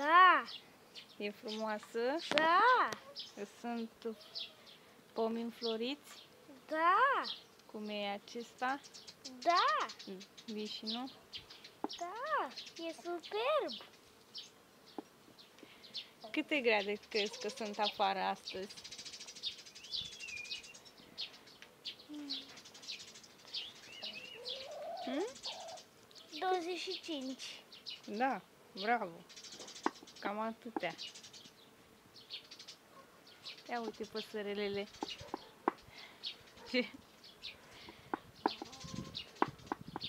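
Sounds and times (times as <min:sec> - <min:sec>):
small songbirds chirping: 0:00.0 - 0:40.0
warbled bird notes: 0:16.8 - 0:31.4.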